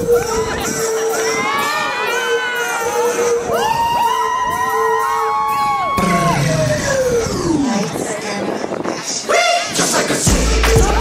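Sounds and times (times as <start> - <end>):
crowd cheering and screaming: 0.0 - 7.6
song music: 0.0 - 11.0.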